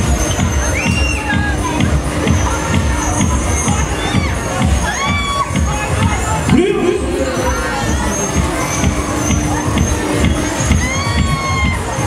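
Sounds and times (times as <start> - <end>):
fairground dance music: 0.0 - 12.0
riders screaming: 8.2 - 12.0.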